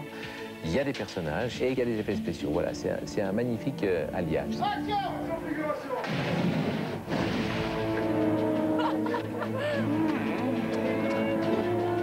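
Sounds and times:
fireball blast of flame: 0:06.1 - 0:08.0.

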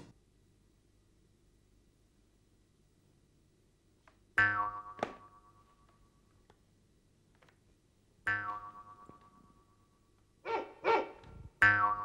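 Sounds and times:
ringing boing tone: 0:04.4 - 0:05.6, 0:08.3 - 0:09.7, 0:11.6 - 0:12.0
short comic yelping sounds: 0:10.5 - 0:11.3.

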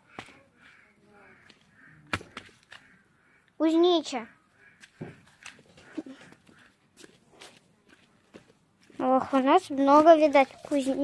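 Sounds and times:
footsteps on wooden walkway: 0:04.6 - 0:11.0.

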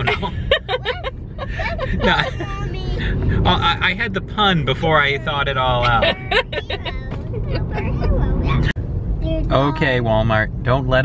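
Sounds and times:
people laughing: 0:00.0 - 0:02.5, 0:05.7 - 0:08.1
car road noise rumble: 0:00.0 - 0:11.0.

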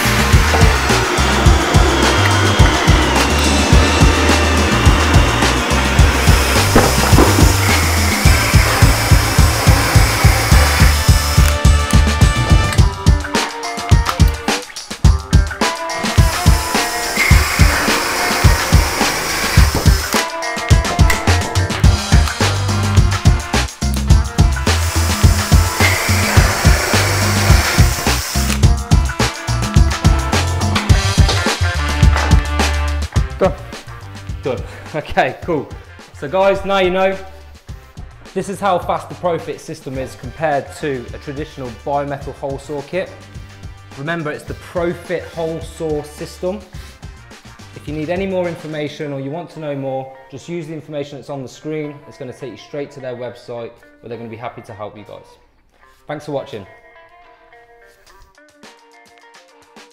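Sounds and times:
cordless drills whining: 0:00.0 - 0:11.6, 0:16.0 - 0:20.2, 0:24.6 - 0:28.6
background music with drum beat: 0:00.0 - 0:48.9, 0:58.0 - 0:59.9.

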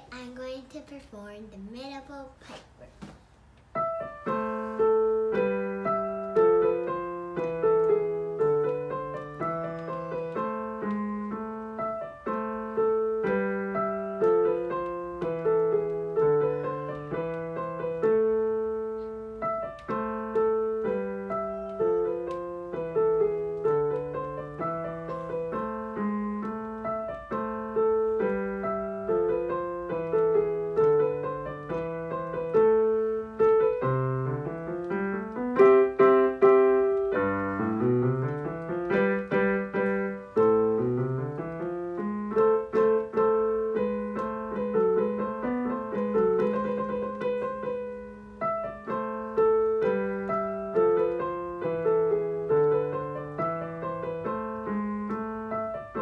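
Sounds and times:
digital piano melody: 0:03.6 - 0:56.0.

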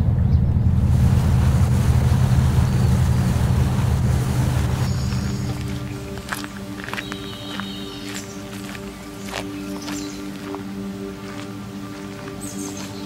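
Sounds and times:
boat engine rumble: 0:00.0 - 0:13.0
water noise: 0:00.0 - 0:13.0
wind: 0:00.0 - 0:13.0
music: 0:02.2 - 0:13.0.

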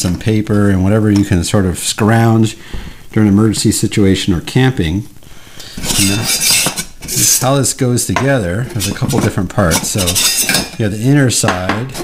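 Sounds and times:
metal parts scraping and clinking: 0:05.8 - 0:07.3, 0:08.7 - 0:10.8.

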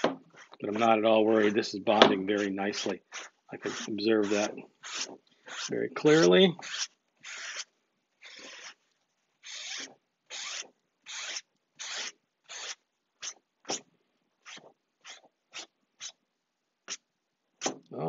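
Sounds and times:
paper towel rubbing on fabric: 0:00.0 - 0:07.6.

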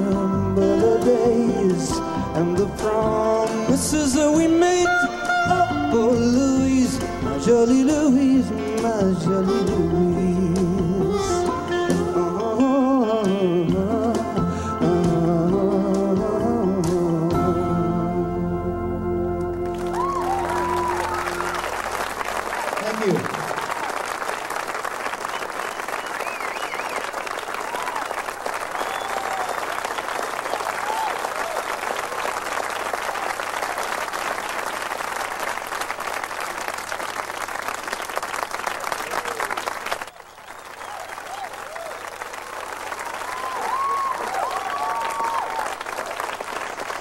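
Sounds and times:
audience applauding: 0:19.5 - 0:47.0.

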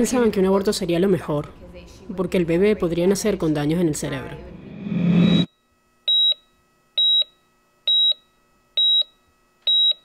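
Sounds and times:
short high electronic beeps: 0:04.8 - 0:05.5.

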